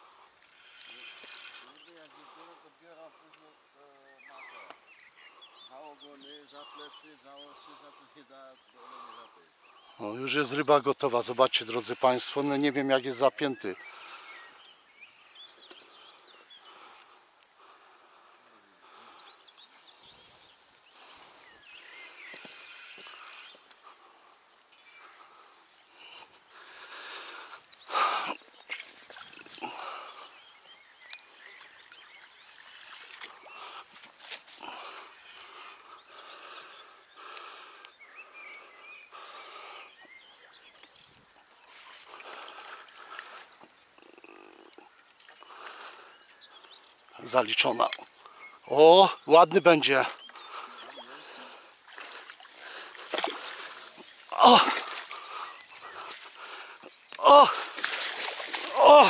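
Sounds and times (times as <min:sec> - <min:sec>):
faint outdoor background: 0:00.0 - 0:59.0
fish splashing in water: 0:50.8 - 0:56.6, 0:57.2 - 0:59.0.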